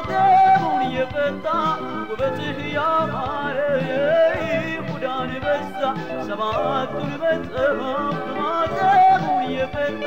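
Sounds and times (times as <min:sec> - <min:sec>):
instrumental accompaniment: 0:00.0 - 0:10.0
solo voice singing: 0:00.0 - 0:10.0.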